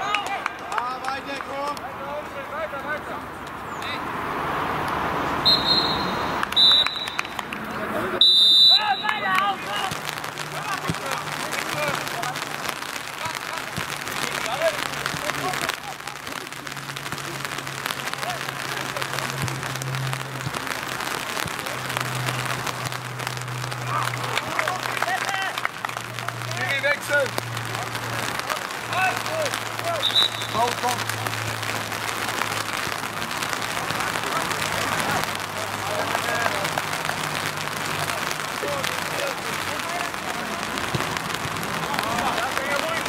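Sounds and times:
players shouting: 0:00.0 - 0:04.1, 0:05.4 - 0:43.0
referee's whistle blasts: 0:05.4 - 0:07.3, 0:08.2 - 0:09.2, 0:30.0 - 0:30.7.

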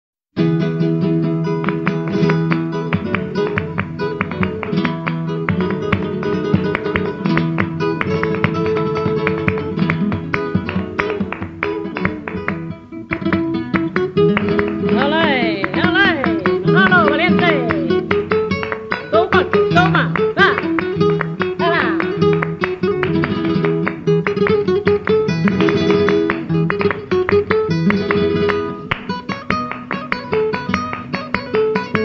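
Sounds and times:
flamenco guitar playing: 0:00.4 - 0:32.0.

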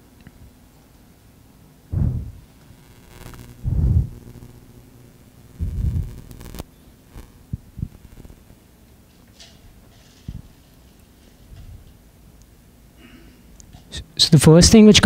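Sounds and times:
dull microphone handling thumps: 0:01.9 - 0:02.4, 0:03.6 - 0:04.2, 0:05.6 - 0:06.2.

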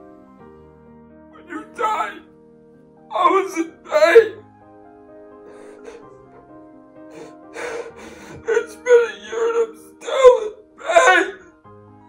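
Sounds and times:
soft background music: 0:00.0 - 0:12.0
man crying with wailing sobs: 0:01.5 - 0:02.2, 0:03.1 - 0:04.4, 0:07.1 - 0:11.4.

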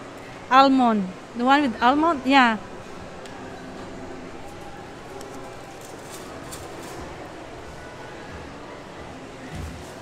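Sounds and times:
faint distant chatter: 0:00.0 - 0:10.0.

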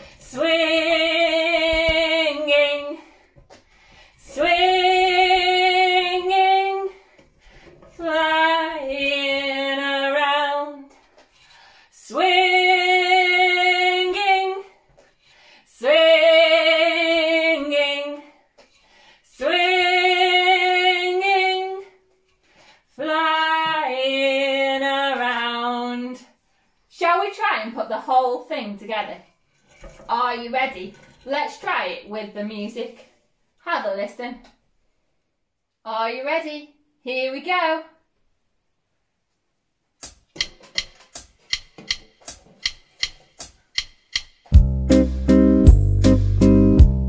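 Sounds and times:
woman singing unaccompanied: 0:00.1 - 0:03.2, 0:04.2 - 0:07.1, 0:07.9 - 0:11.0, 0:12.0 - 0:14.8, 0:15.7 - 0:18.4, 0:19.3 - 0:22.0, 0:23.0 - 0:26.3.

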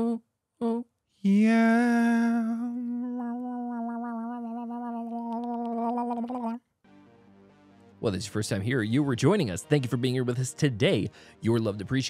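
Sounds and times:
faint background music: 0:06.9 - 0:12.0.

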